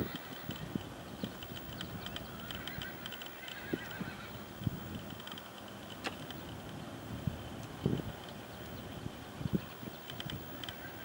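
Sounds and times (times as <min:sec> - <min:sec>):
horse whinny: 0:02.5 - 0:04.4.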